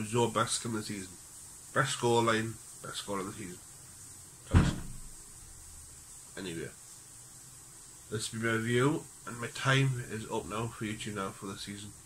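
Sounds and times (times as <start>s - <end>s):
dull thump: 4.5s - 5.2s.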